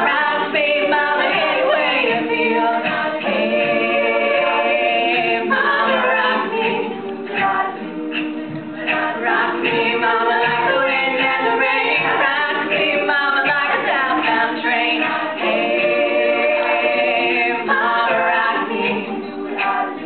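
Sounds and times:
women singing a cappella: 0:00.0 - 0:20.0.

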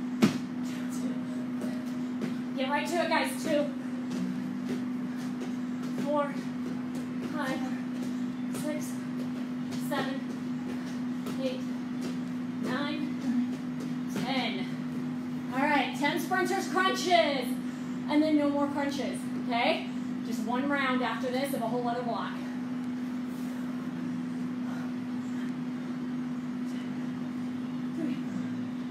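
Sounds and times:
steady low hum: 0:00.0 - 0:28.9.

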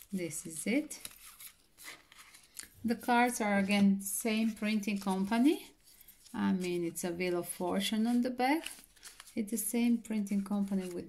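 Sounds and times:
cards rustling: 0:00.0 - 0:09.6, 0:10.2 - 0:11.0.

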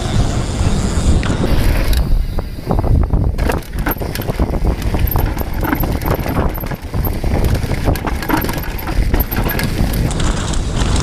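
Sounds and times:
tyres rumbling over trail: 0:00.0 - 0:11.0
wind on microphone: 0:00.0 - 0:11.0
bike chain and frame rattling: 0:03.1 - 0:11.0.

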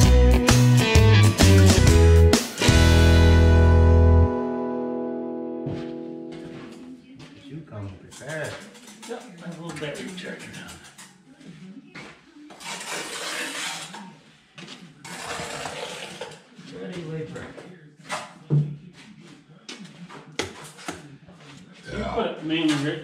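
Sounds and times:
trowel scraping wet mortar: 0:12.5 - 0:14.2, 0:15.0 - 0:16.4.

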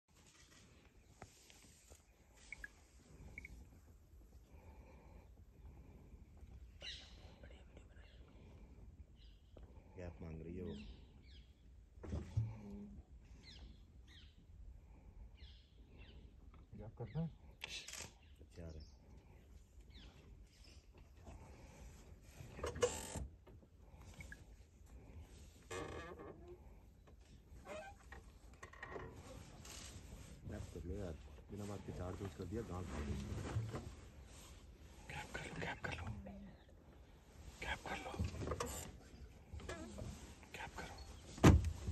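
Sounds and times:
faint whispering voices: 0:01.5 - 0:11.2, 0:12.1 - 0:13.2, 0:16.6 - 0:20.4, 0:29.0 - 0:41.9
person whispering: 0:07.2 - 0:08.3, 0:35.0 - 0:36.7, 0:37.6 - 0:41.2.

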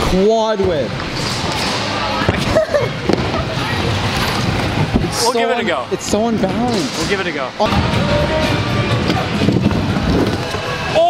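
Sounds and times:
scooter wheels rolling on wood: 0:07.7 - 0:11.0.

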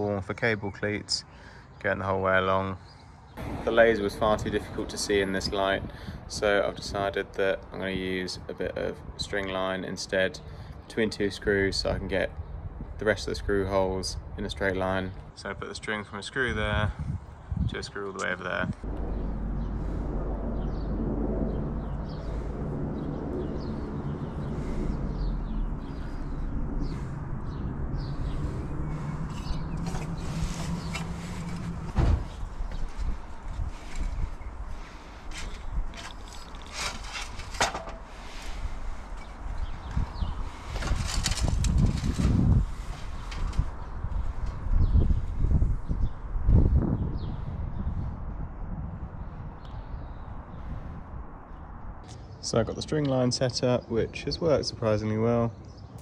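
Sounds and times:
steady low hum: 0:16.9 - 0:47.0
aluminium ladder knocking and rattling: 0:35.9 - 0:38.1.

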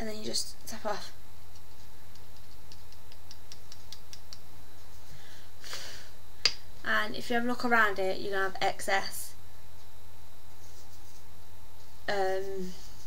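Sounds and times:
soft rustle: 0:10.5 - 0:13.0.

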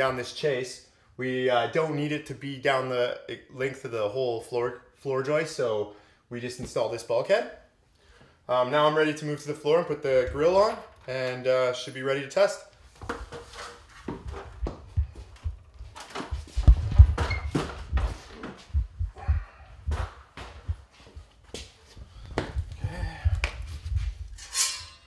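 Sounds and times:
footsteps on concrete: 0:14.0 - 0:24.3
low rumble: 0:14.5 - 0:20.9, 0:22.0 - 0:24.4.

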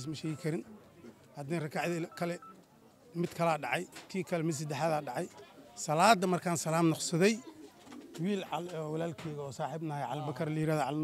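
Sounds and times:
man speaking: 0:00.0 - 0:00.6, 0:01.4 - 0:02.5, 0:08.2 - 0:11.0.

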